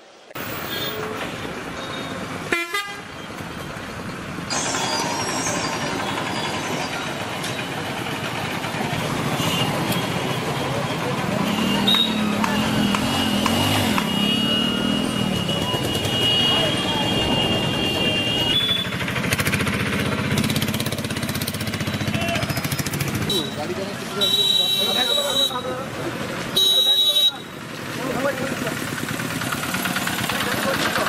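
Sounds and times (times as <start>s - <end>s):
vehicle engines and road noise: 0.0s - 31.0s
car horns tooting: 1.8s - 3.2s, 9.2s - 19.0s, 23.2s - 25.8s, 26.5s - 27.6s.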